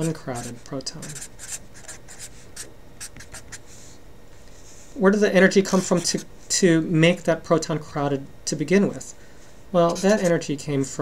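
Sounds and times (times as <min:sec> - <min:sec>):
marker writing on paper: 0:00.0 - 0:03.6, 0:09.9 - 0:10.3.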